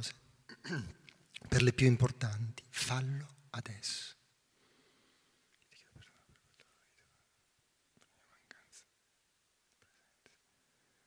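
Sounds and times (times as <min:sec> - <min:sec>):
faint whispered hisses: 0:02.8 - 0:11.0.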